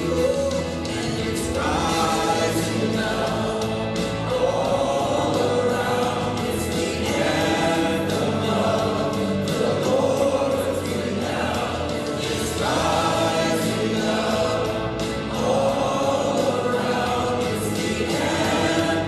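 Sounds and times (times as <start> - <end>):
group singing worship song: 0.0 - 19.0
worship leader singing into microphone: 0.0 - 19.0.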